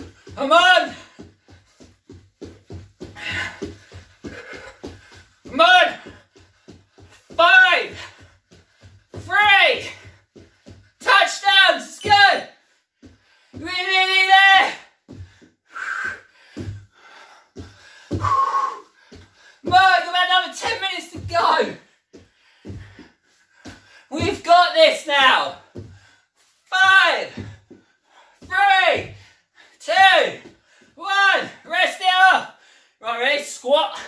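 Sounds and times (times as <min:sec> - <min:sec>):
bare feet thudding on wooden floor: 0:00.0 - 0:11.1, 0:13.0 - 0:29.3.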